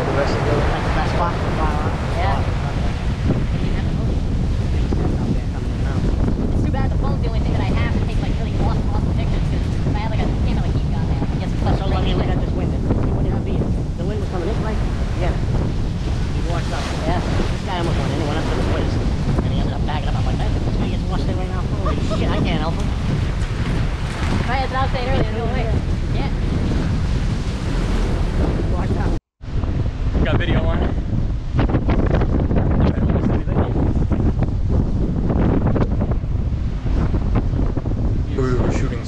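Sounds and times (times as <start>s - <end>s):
faint voices talking: 0.0s - 15.5s, 16.4s - 23.6s, 38.3s - 39.0s
storm surf breaking on rocks: 0.0s - 39.0s
wind buffeting microphone: 0.0s - 39.0s.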